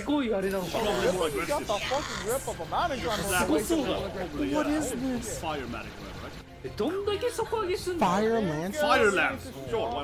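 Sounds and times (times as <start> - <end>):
voices talking over one another: 0.0 - 10.0.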